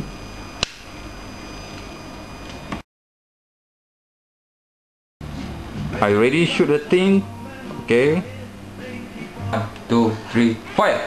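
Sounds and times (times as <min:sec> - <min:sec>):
steady electrical hum: 0:00.0 - 0:02.8, 0:05.2 - 0:11.0.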